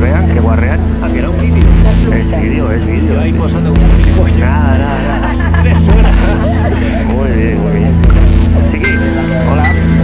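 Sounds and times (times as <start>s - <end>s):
person speaking: 0.0s - 9.8s
low sustained drone: 0.0s - 10.0s.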